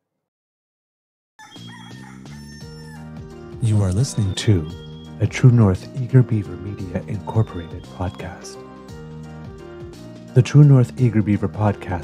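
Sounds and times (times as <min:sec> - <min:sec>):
rooster crowing: 0:01.4 - 0:03.2
music: 0:01.4 - 0:12.0.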